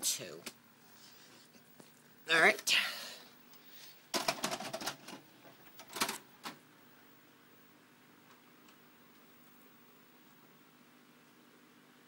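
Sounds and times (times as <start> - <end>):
cassette mechanism clicks: 5.8 - 6.6.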